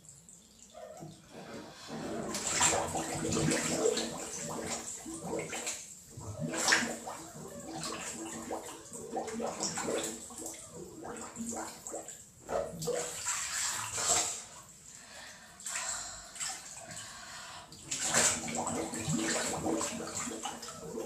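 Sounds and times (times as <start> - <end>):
water sloshing and gurgling: 0.0 - 21.0.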